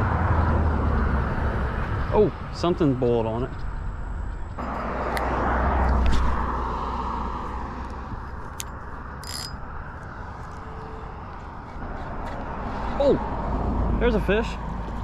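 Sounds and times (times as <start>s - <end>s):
car passing: 0.0s - 15.0s.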